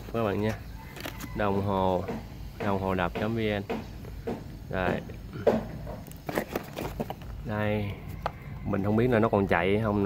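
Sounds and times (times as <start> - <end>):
cardboard packaging handled: 0.7 - 1.4, 6.0 - 7.4.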